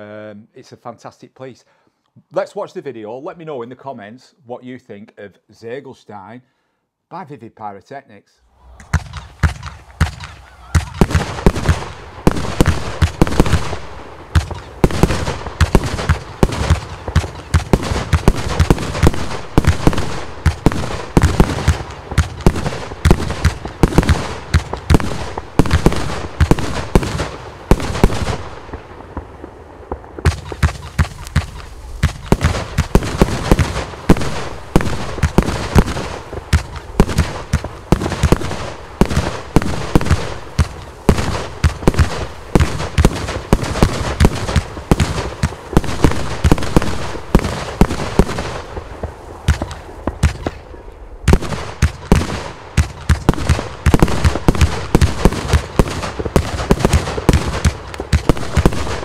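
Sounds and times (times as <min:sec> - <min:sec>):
firework cake firing volley: 0:08.5 - 0:59.0.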